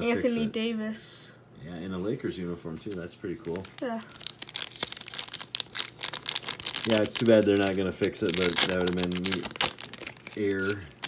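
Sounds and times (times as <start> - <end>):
foil pack crinkling: 2.8 - 11.0.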